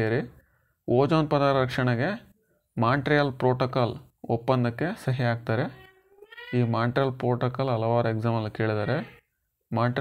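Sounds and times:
man speaking in a lecture: 0.0 - 5.8, 6.6 - 10.0.

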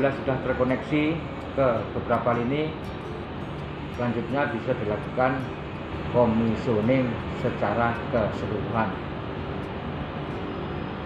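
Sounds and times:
background hum and hiss: 0.0 - 11.0.

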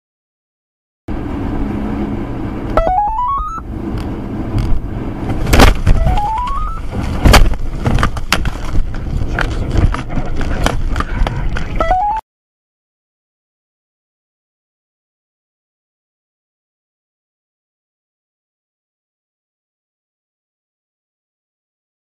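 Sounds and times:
stepped rising tone: 1.5 - 7.2
wind rumbling against car: 3.6 - 11.8
debris knocking on car: 5.3 - 11.4.

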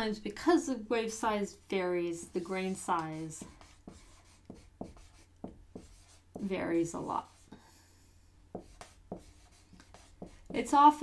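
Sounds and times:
marker writing on whiteboard: 2.3 - 7.5, 8.5 - 11.0.

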